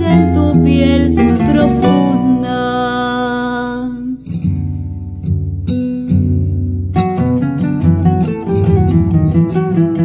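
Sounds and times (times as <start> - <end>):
acoustic guitars and bass guitar: 0.0 - 10.0.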